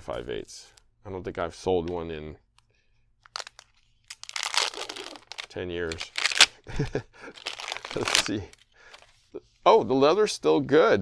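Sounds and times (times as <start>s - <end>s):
leather grip crackling and tearing: 3.3s - 6.5s, 7.5s - 8.4s.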